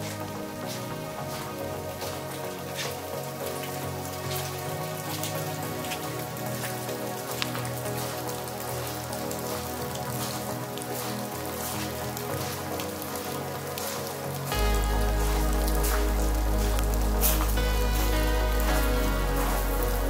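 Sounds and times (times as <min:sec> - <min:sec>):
light rain pattering: 0:00.0 - 0:20.0
soft sustained music: 0:00.0 - 0:20.0
raindrops striking close by: 0:00.1 - 0:20.0.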